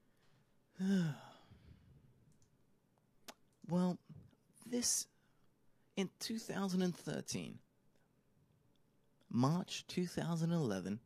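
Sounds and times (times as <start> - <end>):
man sighing: 0.7 - 1.9
faint clicks: 2.3 - 3.7.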